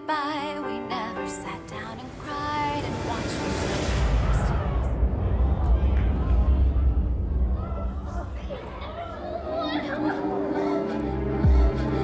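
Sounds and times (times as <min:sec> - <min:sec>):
audience talking: 0:02.4 - 0:11.5.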